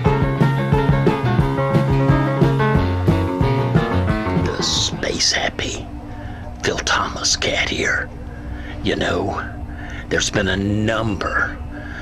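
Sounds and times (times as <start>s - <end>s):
man speaking: 4.4s - 5.9s, 6.6s - 8.1s, 8.8s - 11.6s.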